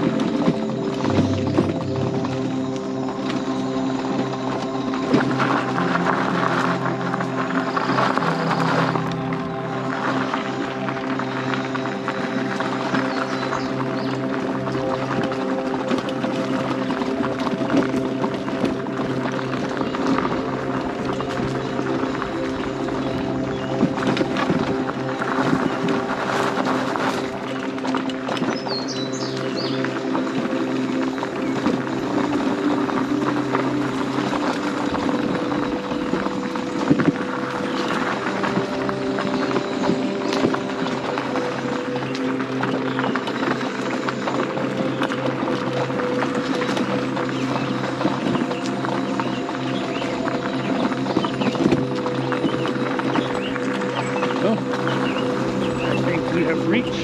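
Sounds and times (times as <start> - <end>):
scooter motor whine: 0.0 - 57.0
tyres crackling on gravel: 0.0 - 57.0.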